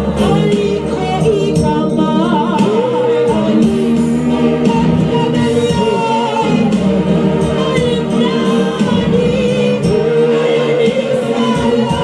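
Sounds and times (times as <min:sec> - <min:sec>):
instrumental backing: 0:00.0 - 0:12.0
voices singing together: 0:00.0 - 0:12.0.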